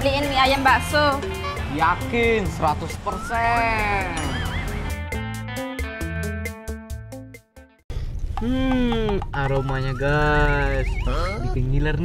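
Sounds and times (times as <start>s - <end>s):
wobbling whistle tone: 3.0s - 5.0s, 9.4s - 11.6s
music with quick beat: 8.8s - 10.2s
bleat-like comedy call: 11.1s - 11.8s.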